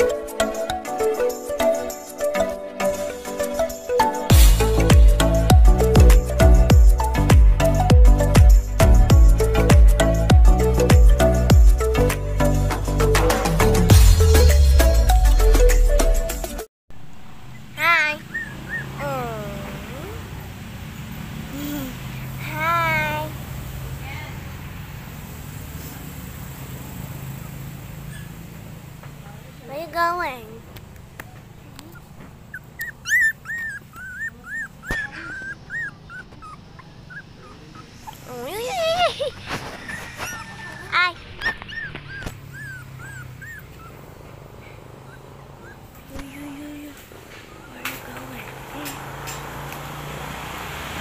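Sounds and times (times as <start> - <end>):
puppy crying: 17.8 - 19.8, 31.9 - 44.3, 44.9 - 46.1
puppy yelping: 17.8 - 19.8, 28.0 - 28.5, 31.8 - 46.1, 47.3 - 48.1
puppy whining: 18.1 - 20.2, 31.8 - 49.4.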